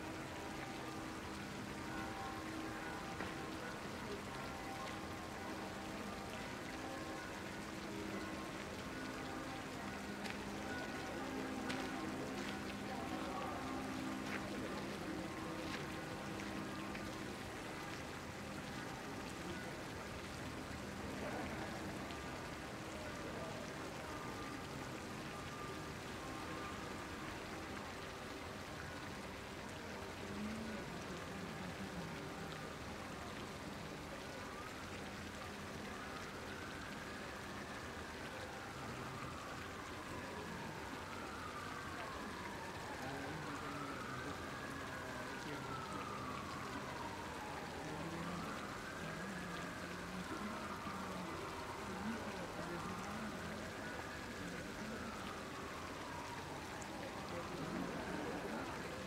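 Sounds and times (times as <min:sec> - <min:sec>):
fountain jets splashing into pond: 0:00.0 - 0:59.0.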